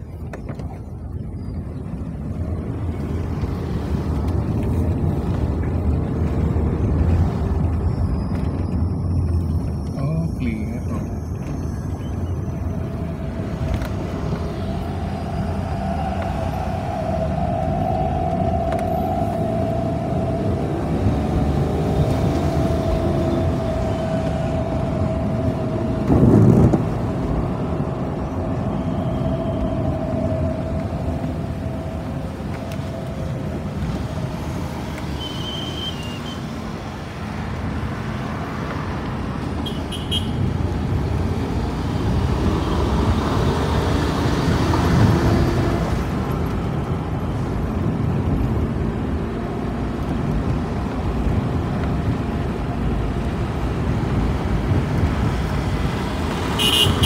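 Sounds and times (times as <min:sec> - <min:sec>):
road noise low rumble: 0:00.0 - 0:57.0
held hum: 0:12.3 - 0:34.4.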